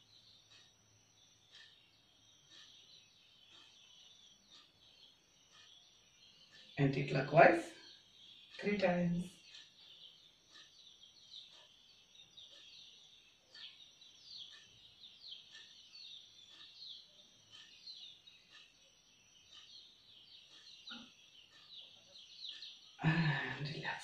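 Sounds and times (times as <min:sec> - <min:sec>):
small birds chirping: 0:00.0 - 0:24.0.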